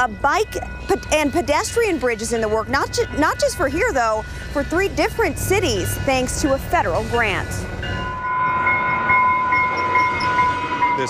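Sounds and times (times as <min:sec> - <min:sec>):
train rumbling: 0:00.0 - 0:11.0.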